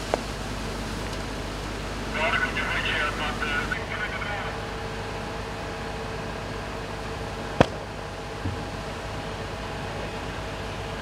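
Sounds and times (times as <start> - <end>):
fire engines and pumps droning: 0.0 - 11.0
indistinct voices: 2.1 - 4.6.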